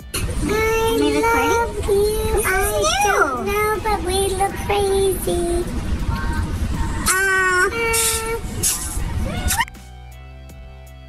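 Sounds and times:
high-pitched voice singing: 0:00.4 - 0:09.7.

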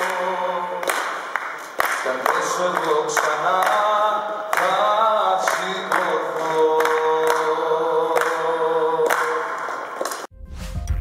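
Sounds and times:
man singing into microphone: 0:00.0 - 0:01.3, 0:02.0 - 0:10.0.

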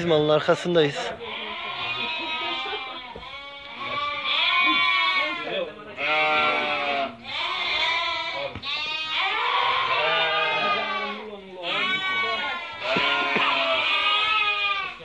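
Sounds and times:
sheep bleating: 0:01.0 - 0:15.0.

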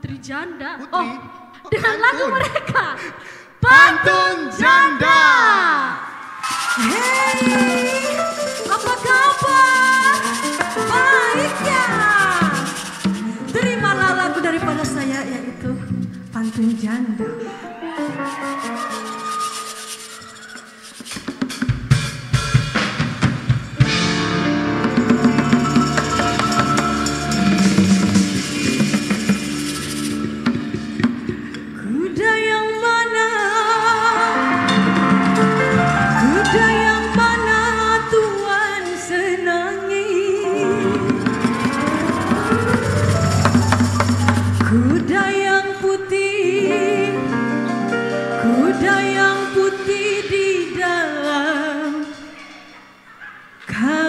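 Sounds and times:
drums and percussion: 0:06.2 - 0:17.1, 0:18.0 - 0:31.9, 0:34.3 - 0:39.6, 0:40.4 - 0:46.3
woman singing: 0:06.8 - 0:17.4, 0:31.8 - 0:35.2, 0:36.2 - 0:41.5, 0:44.6 - 0:47.5, 0:48.4 - 0:52.3, 0:53.7 - 0:54.0
drum kit hits: 0:21.3 - 0:31.8, 0:40.7 - 0:45.4
electric guitar: 0:23.0 - 0:33.0, 0:33.6 - 0:50.6
keyboard: 0:23.5 - 0:51.0.

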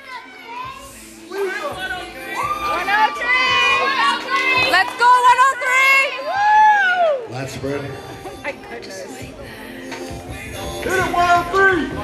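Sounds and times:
spectators shouting: 0:01.4 - 0:07.3.

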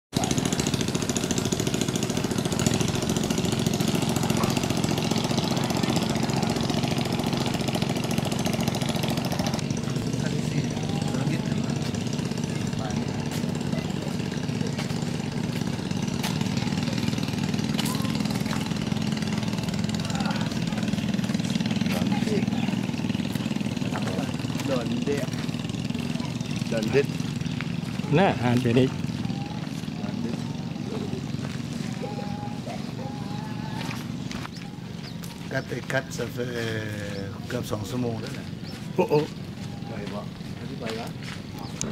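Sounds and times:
engine running with rapid pulse: 0:00.1 - 0:41.9
indistinct voices: 0:00.2 - 0:41.9.

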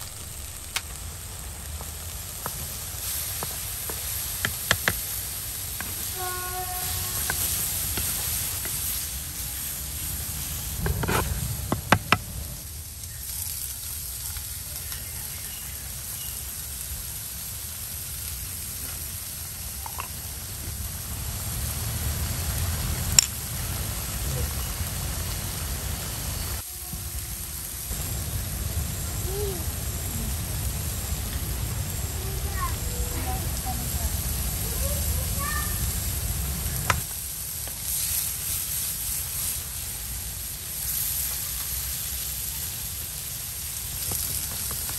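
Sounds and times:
food sizzling in a frying pan: 0:00.0 - 0:44.9.

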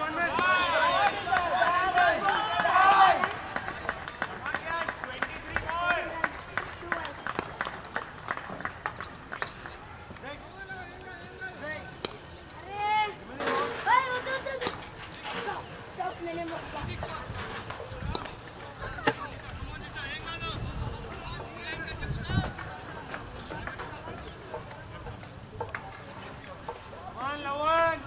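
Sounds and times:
players shouting: 0:00.0 - 0:07.1
sharp handclaps: 0:00.3 - 0:09.8.

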